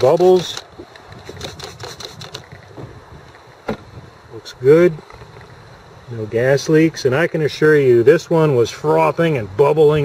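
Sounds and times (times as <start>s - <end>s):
spray bottle clicking and spritzing: 0.0s - 2.5s.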